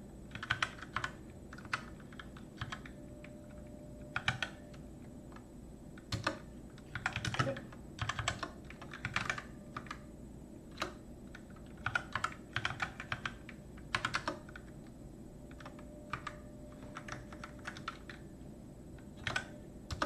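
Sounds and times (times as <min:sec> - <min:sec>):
computer keyboard typing: 0:00.3 - 0:05.4, 0:06.0 - 0:10.1, 0:10.7 - 0:14.9, 0:15.5 - 0:18.3, 0:19.0 - 0:20.0.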